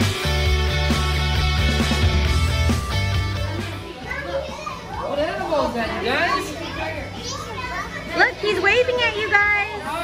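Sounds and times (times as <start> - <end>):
young children talking: 2.9 - 10.0.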